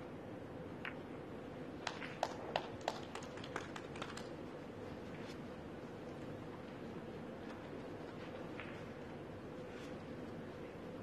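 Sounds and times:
faint hall noise: 0.0 - 11.0.

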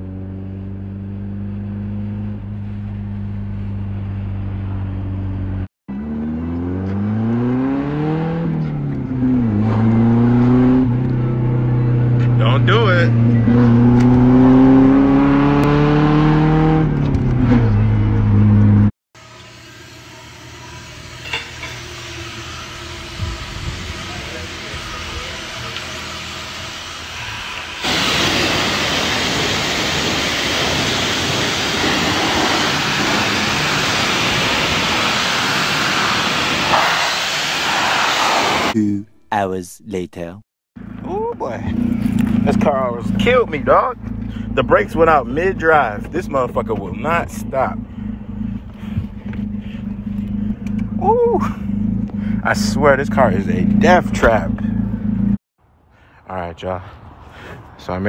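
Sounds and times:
car engine revving: 0.0 - 18.9, 20.1 - 38.8, 40.8 - 55.4
pressure washer spraying: 24.2 - 38.8.

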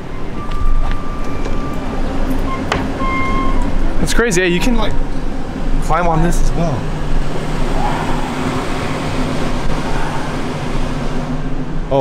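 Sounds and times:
exhaust fan humming: 0.0 - 12.0.

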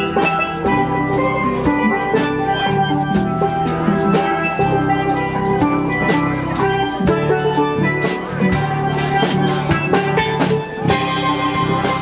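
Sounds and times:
drum kit with cymbal beat: 0.0 - 12.0
electric bass: 0.0 - 12.0
steel pan notes: 0.0 - 12.0.

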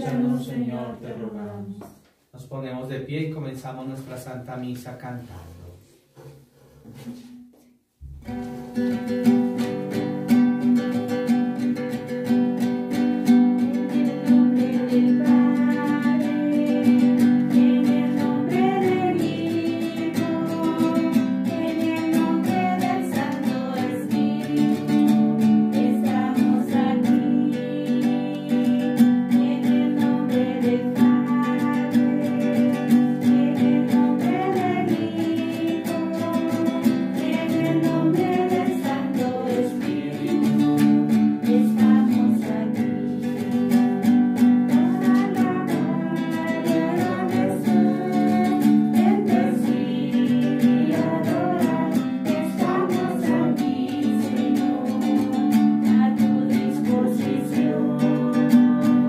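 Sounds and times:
person singing a hymn: 0.0 - 1.9, 13.5 - 59.0
strummed stringed instrument: 8.0 - 59.0.

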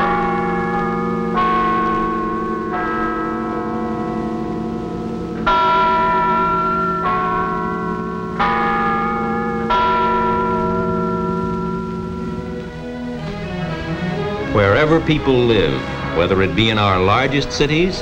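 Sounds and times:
bells chiming slow melody: 0.0 - 18.0.

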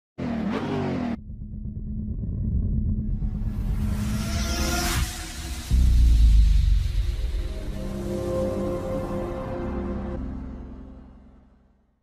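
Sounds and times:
car engine: 0.2 - 8.0
low steady rumble: 1.2 - 4.6.

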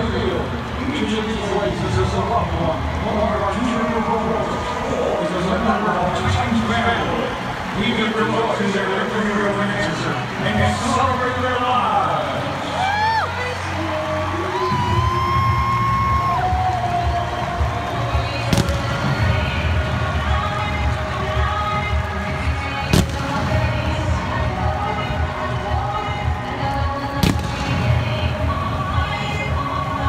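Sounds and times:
sharp cracks: 18.4 - 19.5, 22.9 - 23.8, 27.2 - 27.9.

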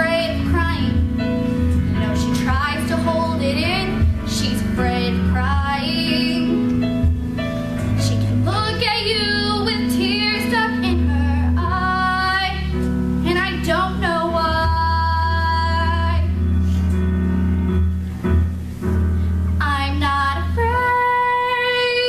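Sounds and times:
woman singing a ballad: 0.0 - 7.2, 7.8 - 16.4, 19.6 - 22.0
instrumental accompaniment: 0.0 - 22.0.

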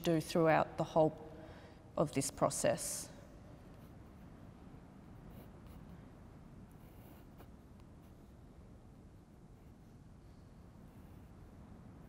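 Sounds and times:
pencil scratching on paper: 5.0 - 8.4, 10.8 - 11.6.

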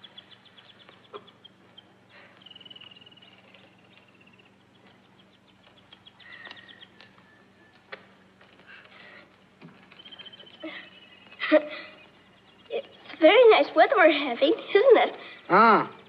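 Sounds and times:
faint birdsong: 0.0 - 16.0
steady low hum: 0.0 - 16.0.

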